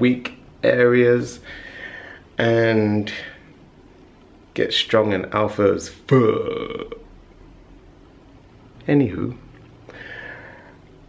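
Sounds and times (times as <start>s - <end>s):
man making wordless vocal sound: 6.1s - 7.1s.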